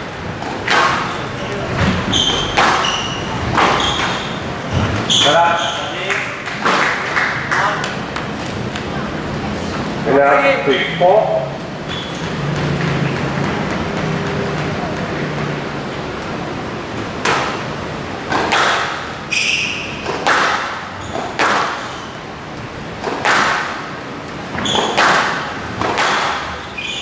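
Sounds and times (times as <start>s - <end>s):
squash racquet hitting ball: 0.0s - 5.4s, 6.1s - 8.4s, 17.2s - 22.2s, 22.9s - 26.8s
ball hitting court walls: 0.3s - 8.8s, 17.2s - 22.2s, 23.0s - 26.8s
shoes squeaking on court floor: 0.4s - 9.4s, 11.6s - 13.7s, 18.4s - 25.4s, 26.0s - 27.0s.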